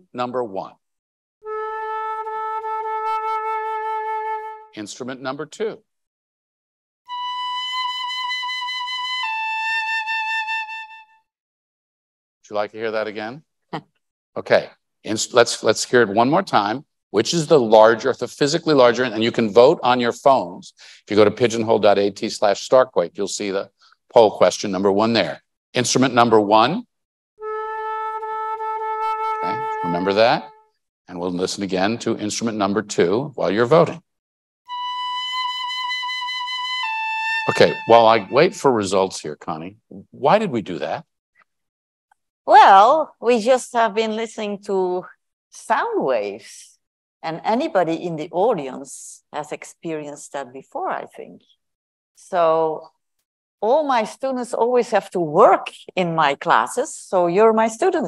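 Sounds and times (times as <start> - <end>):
instrument playing long high notes: 1.4 - 4.7, 7.1 - 11.2, 27.4 - 30.6, 34.7 - 38.8.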